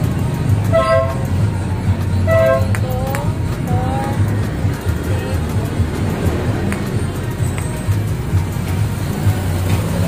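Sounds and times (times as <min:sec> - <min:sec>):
traffic rumbling: 0:00.0 - 0:10.0
vehicle horn toots: 0:00.6 - 0:01.3, 0:02.2 - 0:02.8.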